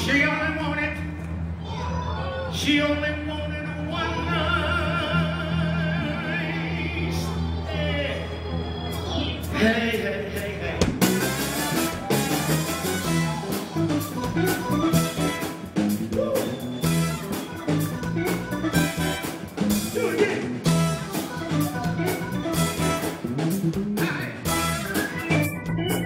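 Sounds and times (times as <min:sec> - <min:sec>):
electric bass: 0:02.6 - 0:26.0
guitar: 0:03.6 - 0:26.0
drum kit steady beat: 0:10.8 - 0:26.0
horns: 0:11.0 - 0:23.7, 0:24.4 - 0:25.6
organ: 0:24.4 - 0:26.0.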